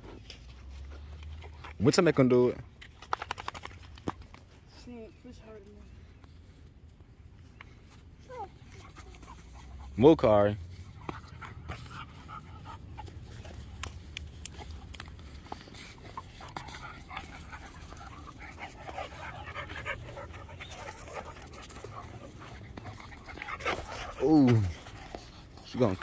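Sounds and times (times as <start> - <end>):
small clicks and scuffs: 0.0 - 1.8, 2.7 - 4.8, 10.6 - 26.0
dogs panting: 7.6 - 26.0.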